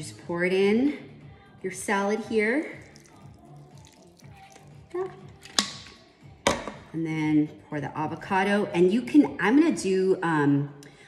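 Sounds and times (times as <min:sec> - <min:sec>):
liquid trickling onto salad: 0:02.7 - 0:04.9.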